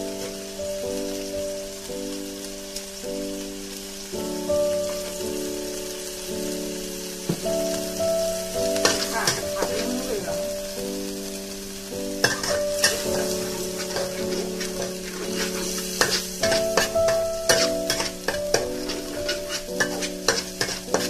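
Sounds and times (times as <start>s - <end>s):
background music of held notes: 0.0s - 21.0s
paste sizzling in a wok: 0.0s - 21.0s
metal spatula scraping a pan: 8.8s - 10.1s, 12.2s - 21.0s.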